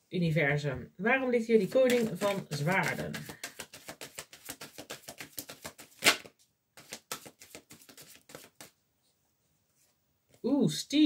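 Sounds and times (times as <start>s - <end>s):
cards being shuffled: 1.6s - 8.8s.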